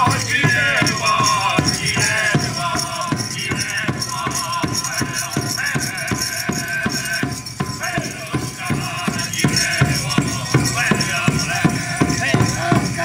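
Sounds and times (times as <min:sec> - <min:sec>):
steady drumbeat: 0:00.0 - 0:13.0
voices singing: 0:00.0 - 0:13.0.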